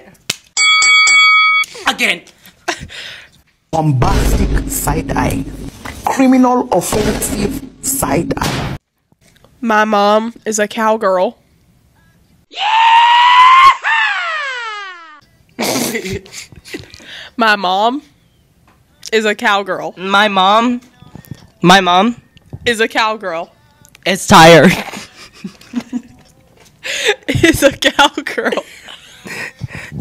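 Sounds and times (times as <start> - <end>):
chime sound effect dings: 0.6 - 1.7
scream-like cry sound effect: 12.5 - 15.2
laughter: 15.6 - 17.0, 24.6 - 26.2, 27.1 - 29.7.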